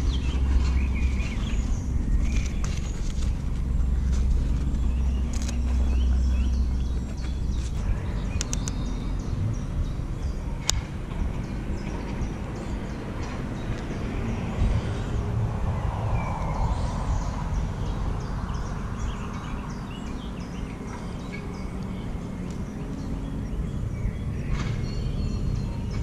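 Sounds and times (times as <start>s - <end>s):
small birds chirping: 0.0s - 26.0s
wind rumble: 0.0s - 26.0s
sharp clicks: 8.4s - 8.9s.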